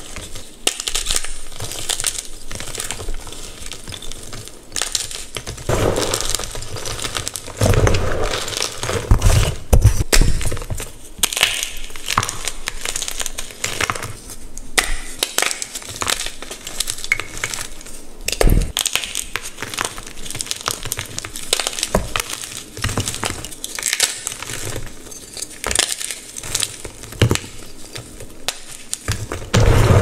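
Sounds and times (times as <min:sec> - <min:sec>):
chalk crunching and crackling: 0:00.0 - 0:30.0
chunks breaking with thuds: 0:29.2 - 0:30.0.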